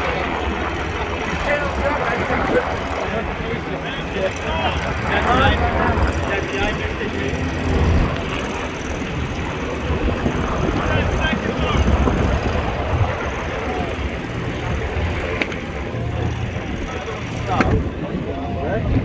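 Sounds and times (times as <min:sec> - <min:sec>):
indistinct voices talking: 0:00.0 - 0:19.0
motorboat engine rumbling: 0:00.0 - 0:19.0.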